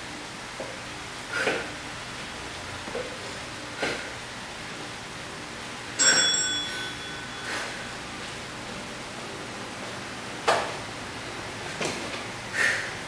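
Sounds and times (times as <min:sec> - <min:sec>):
timer bell ding: 0:06.0 - 0:08.0.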